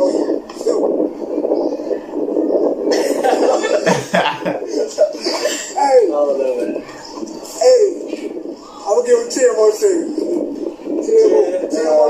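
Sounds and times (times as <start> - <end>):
man laughing hard: 2.9 - 5.7.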